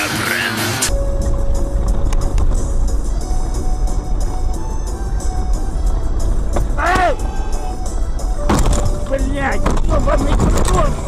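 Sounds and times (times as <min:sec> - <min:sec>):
car rumble on snowy road: 0:00.9 - 0:11.0.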